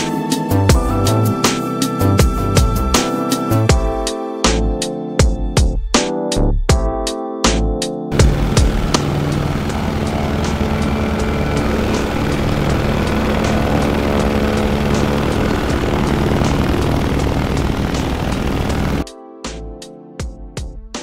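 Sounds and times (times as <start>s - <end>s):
aircraft engine drone: 8.1s - 19.0s.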